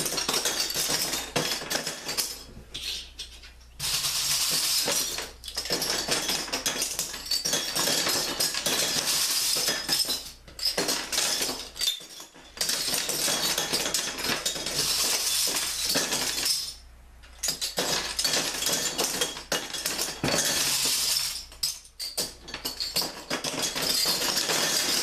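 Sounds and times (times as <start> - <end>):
metal bottle caps clattering on glass: 0.0 - 25.0.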